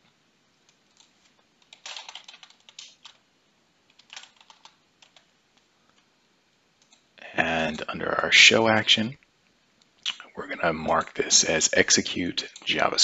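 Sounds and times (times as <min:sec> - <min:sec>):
faint keyboard typing: 0:00.0 - 0:06.1, 0:06.8 - 0:07.2, 0:12.4 - 0:13.0.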